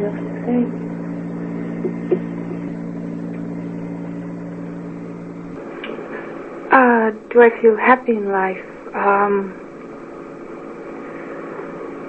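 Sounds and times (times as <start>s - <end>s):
low hum: 0.0s - 12.0s
tape hiss: 0.0s - 12.0s.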